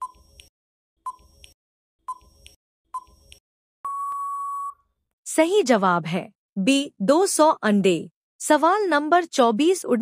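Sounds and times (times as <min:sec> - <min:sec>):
long steady beep: 0:03.8 - 0:04.8.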